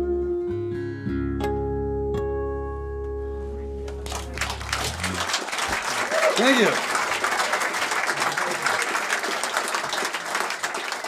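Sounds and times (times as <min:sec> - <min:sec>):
audience applause: 0:04.0 - 0:11.0.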